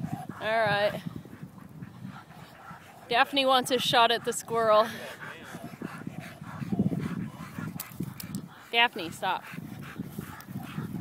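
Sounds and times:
dog panting softly: 0.0s - 11.0s.

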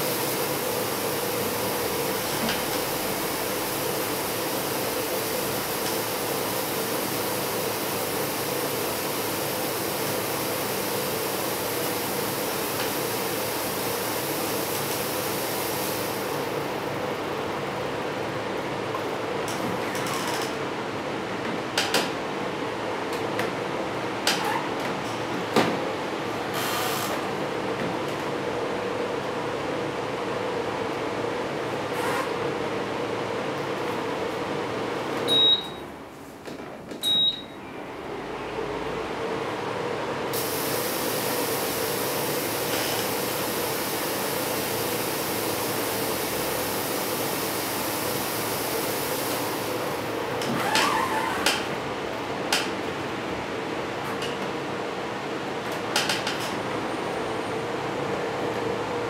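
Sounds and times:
computer fans whirring hum: 0.0s - 40.4s, 41.1s - 59.0s
short high beeps: 35.3s - 35.8s, 37.0s - 37.6s.

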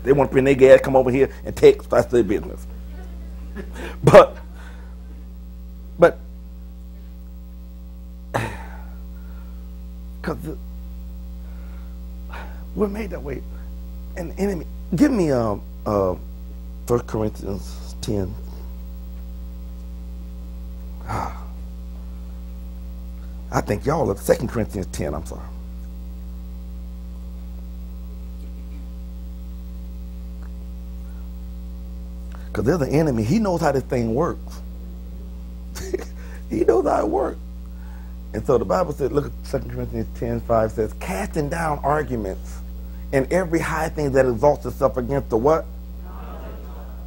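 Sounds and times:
electrical mains hum: 0.0s - 47.0s.

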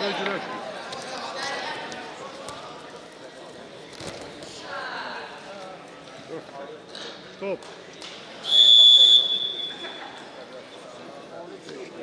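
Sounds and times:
referee's whistle blast: 8.4s - 9.8s.

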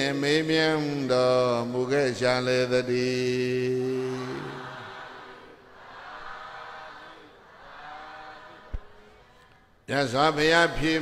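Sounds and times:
man chanting: 0.0s - 4.7s, 9.9s - 11.0s.

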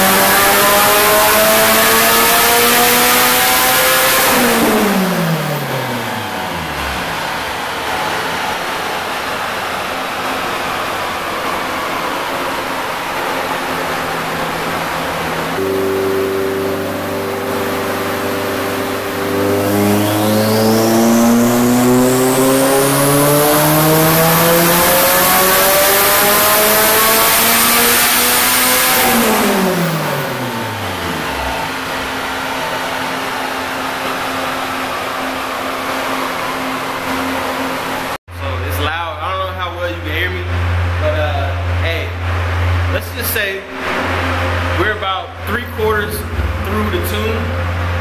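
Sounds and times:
car engine revving at full throttle: 0.0s - 48.0s
low machine hum: 5.2s - 24.5s, 29.4s - 48.0s
turbo whistle: 15.6s - 21.4s
man talking: 38.3s - 42.2s, 42.9s - 43.8s, 44.8s - 47.6s.

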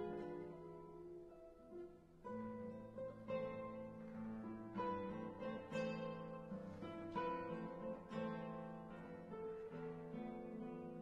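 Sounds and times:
classical guitar duo: 0.0s - 11.0s.

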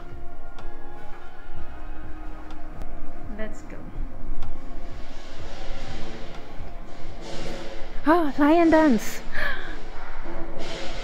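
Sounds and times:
low rumble: 1.5s - 11.0s
crashing cymbals: 4.6s - 11.0s.

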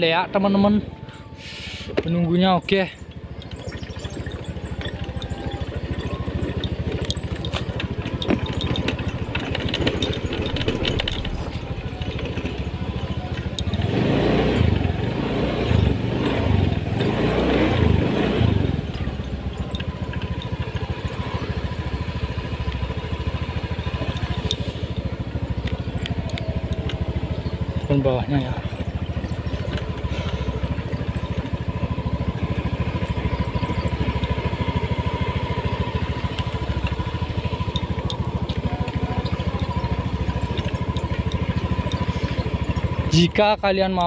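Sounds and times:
motorcycle engine running: 0.0s - 44.0s.

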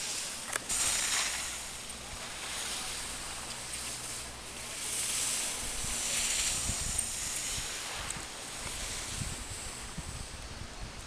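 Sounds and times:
skis scraping across snow: 0.0s - 11.0s
wind rumbling on microphone: 0.0s - 11.0s.

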